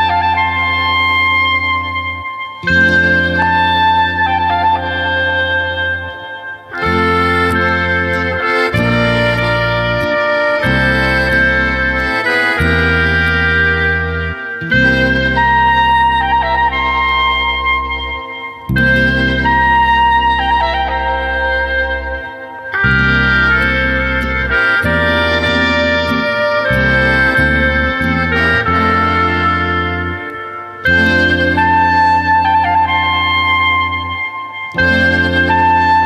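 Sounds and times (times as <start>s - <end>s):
folk band playing: 0.0s - 36.0s
woodwind melody: 0.0s - 36.0s.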